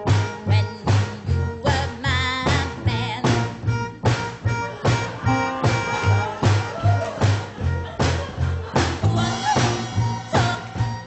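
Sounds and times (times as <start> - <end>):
bass line: 0.0 - 11.0
live band playing upbeat song: 0.0 - 11.0.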